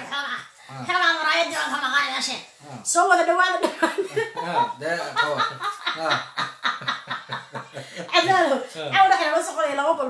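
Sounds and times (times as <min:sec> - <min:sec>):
person laughing: 0:03.9 - 0:07.8.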